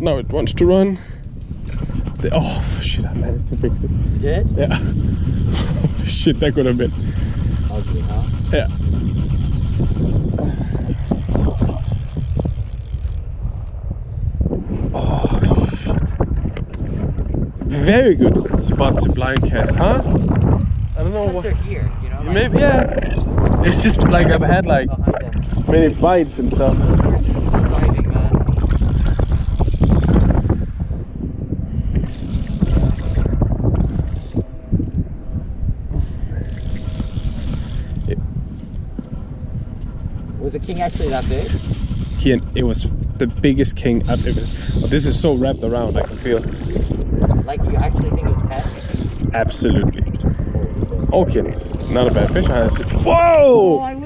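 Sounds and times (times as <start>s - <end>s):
wind rumbling on microphone: 0.0s - 54.0s.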